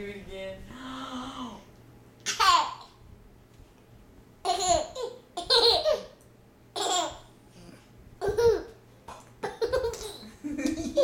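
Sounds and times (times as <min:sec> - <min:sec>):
toddler laughing: 0:04.4 - 0:06.2, 0:06.8 - 0:07.3, 0:08.2 - 0:08.8, 0:09.4 - 0:11.0.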